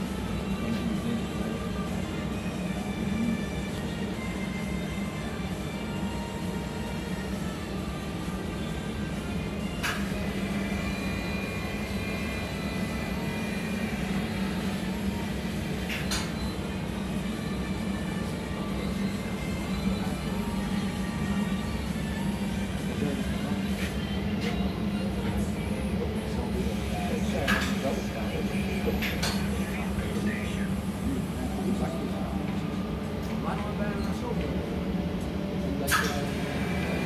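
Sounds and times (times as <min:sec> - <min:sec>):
machine hum: 0:00.0 - 0:37.0.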